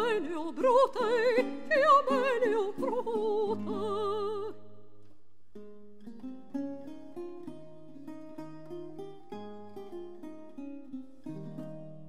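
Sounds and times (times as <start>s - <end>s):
guitar playing plucked notes and chords: 5.0s - 12.0s.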